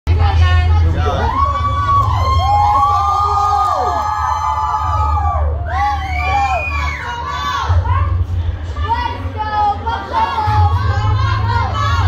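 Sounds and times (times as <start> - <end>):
children cheering and shouting: 1.1 - 8.2, 9.9 - 12.0.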